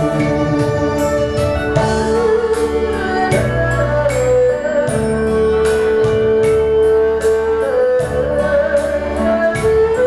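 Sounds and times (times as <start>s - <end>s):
instrumental backing track: 0.0s - 10.0s.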